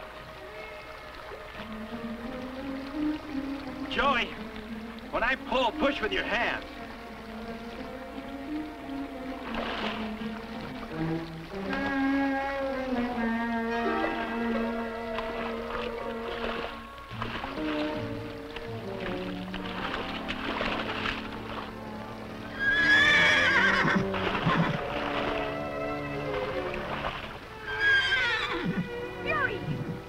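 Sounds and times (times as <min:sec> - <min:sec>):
film score music: 0:00.0 - 0:30.0
horse whinnying: 0:22.5 - 0:26.6, 0:27.5 - 0:30.0.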